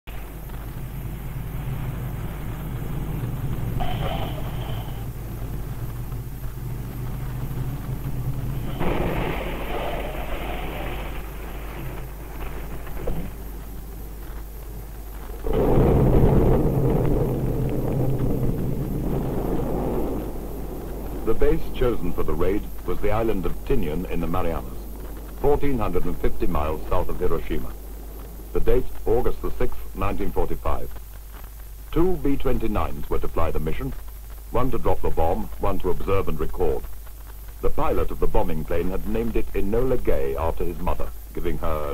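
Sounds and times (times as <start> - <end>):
aircraft engine noise: 0.0 - 41.9
steady low hum: 0.0 - 41.9.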